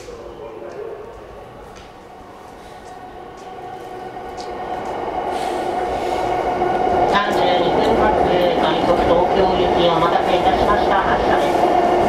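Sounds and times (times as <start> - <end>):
electric train running hum: 0.0 - 12.0.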